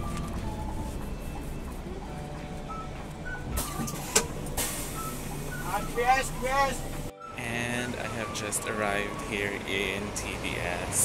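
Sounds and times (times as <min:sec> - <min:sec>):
bus engine and road rumble: 0:00.0 - 0:11.0
man's voice: 0:05.6 - 0:11.0.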